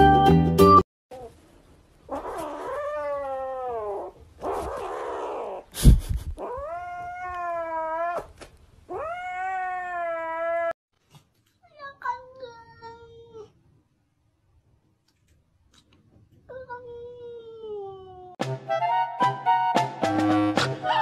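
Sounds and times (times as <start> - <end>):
kitten yowling: 8.9 - 10.8.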